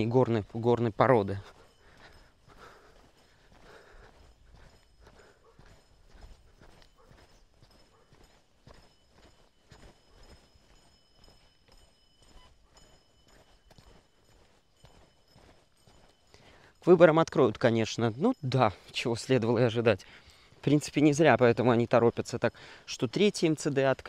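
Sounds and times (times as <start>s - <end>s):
footsteps on gravel: 0.0s - 16.6s.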